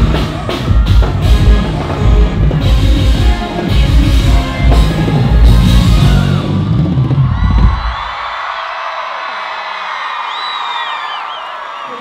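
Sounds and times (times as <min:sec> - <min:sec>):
live band playing: 0:00.0 - 0:07.9
crowd cheering: 0:00.0 - 0:12.0.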